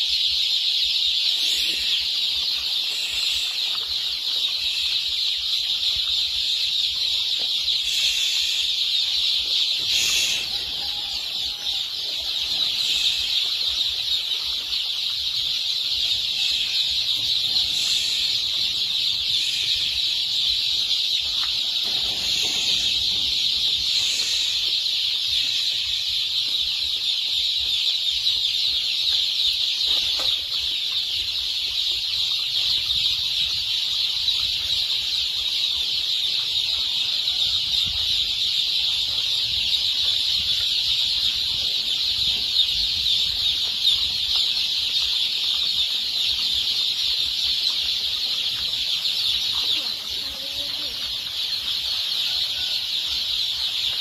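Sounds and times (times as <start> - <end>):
chicks peeping: 0.0 - 54.0.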